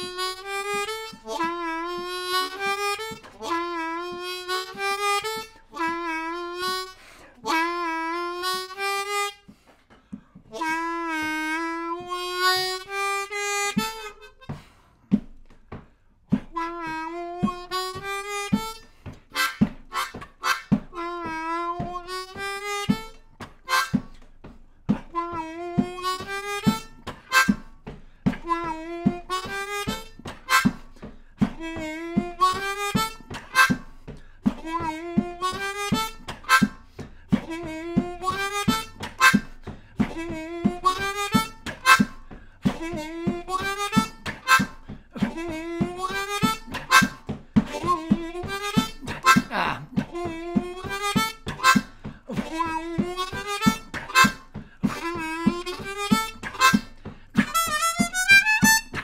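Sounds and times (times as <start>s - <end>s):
harmonica bent notes: 0.0s - 59.0s.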